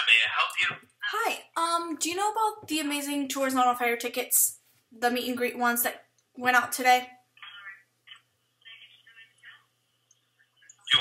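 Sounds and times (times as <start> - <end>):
muffled telephone speech: 0.0 - 1.3, 7.4 - 9.7, 10.8 - 11.0.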